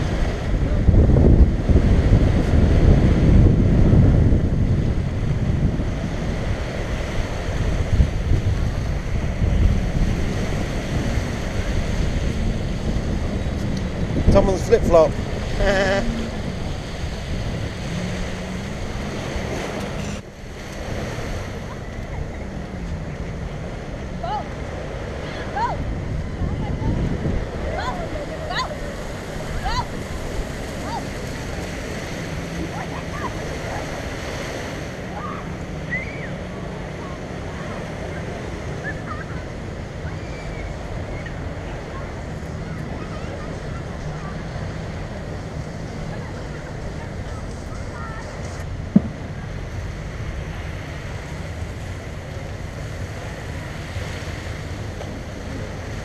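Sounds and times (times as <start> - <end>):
small waves washing on sand: 0.0 - 56.0
wind on microphone: 0.0 - 56.0.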